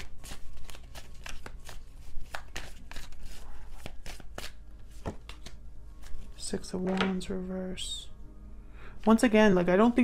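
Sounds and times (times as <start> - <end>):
cards shuffled by hand: 0.0 - 6.2.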